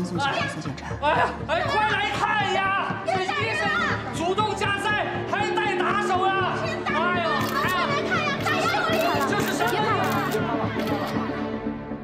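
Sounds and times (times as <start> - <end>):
raised voices arguing: 0.2 - 10.9.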